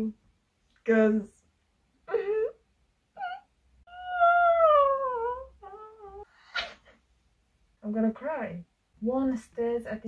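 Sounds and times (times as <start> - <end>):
woman whimpering: 2.1 - 2.6, 3.2 - 6.3
woman squeaking: 3.2 - 6.8.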